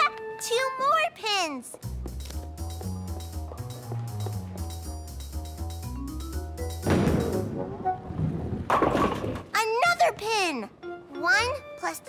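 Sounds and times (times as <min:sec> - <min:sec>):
light cartoon music: 0:00.0 - 0:08.2, 0:09.7 - 0:12.0
bowling ball rumbling: 0:06.8 - 0:09.5.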